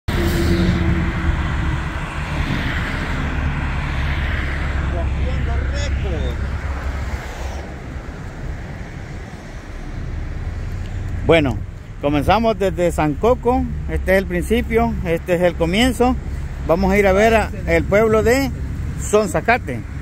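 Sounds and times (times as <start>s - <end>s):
low traffic rumble: 0.0s - 20.0s
vehicle passing: 0.1s - 20.0s.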